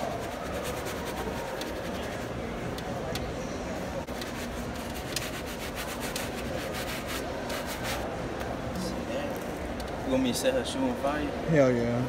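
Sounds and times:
brush scrubbing sneaker: 0:00.0 - 0:02.4, 0:04.1 - 0:08.1.

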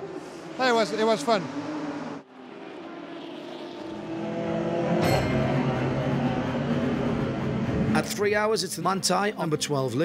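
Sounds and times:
race car engines: 0:00.0 - 0:09.4.

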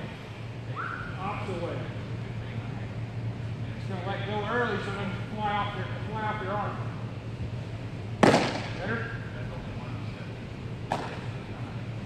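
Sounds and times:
steady low hum: 0:00.0 - 0:12.0
baseball smacking into mitt: 0:08.2 - 0:08.8, 0:10.9 - 0:11.2.

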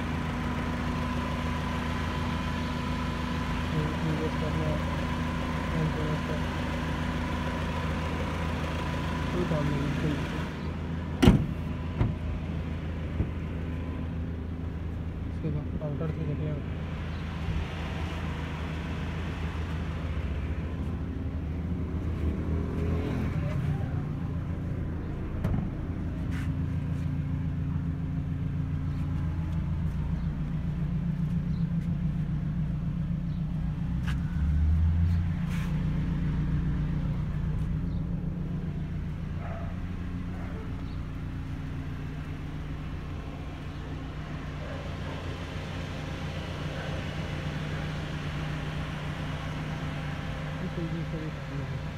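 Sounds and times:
car engine idling: 0:00.0 - 0:51.9.

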